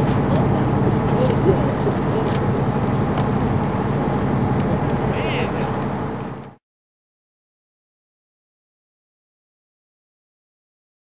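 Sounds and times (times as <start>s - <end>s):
heavy machinery engine idling: 0.0s - 6.6s
outdoor background noise: 0.0s - 6.6s.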